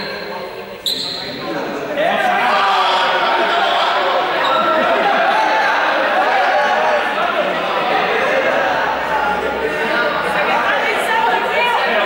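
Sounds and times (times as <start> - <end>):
young people chattering: 0.0 - 12.0.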